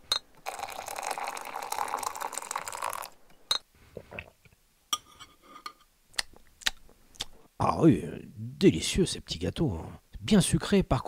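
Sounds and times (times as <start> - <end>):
tea being poured: 0.4 - 3.2.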